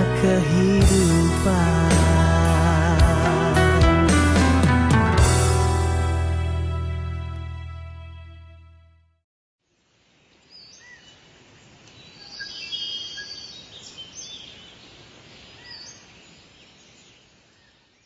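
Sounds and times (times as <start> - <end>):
outdoor background hiss: 9.6 - 18.0
birds chirping: 10.3 - 18.0.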